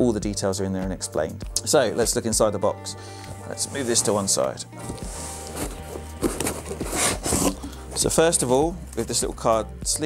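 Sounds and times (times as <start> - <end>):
background music: 0.0 - 10.0
cardboard rubbing and sliding: 3.6 - 9.2.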